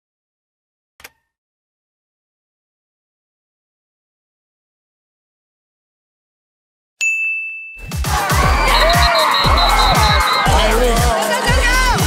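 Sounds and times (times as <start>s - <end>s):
bright ding chime: 7.0s - 8.0s
music with heavy beat: 7.9s - 12.0s.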